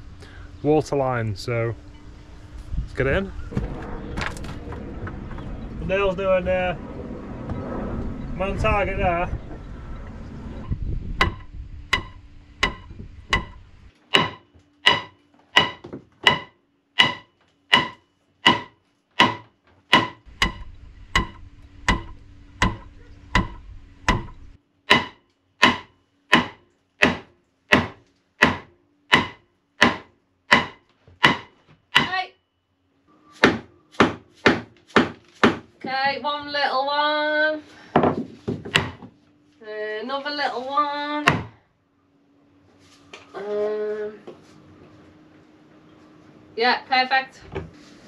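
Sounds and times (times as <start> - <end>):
hammer driving nails into wood: 12.0 - 20.6.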